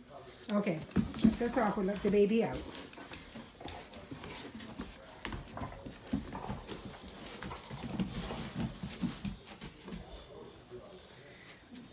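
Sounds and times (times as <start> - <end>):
dogs sniffing and snuffling: 0.0 - 11.9.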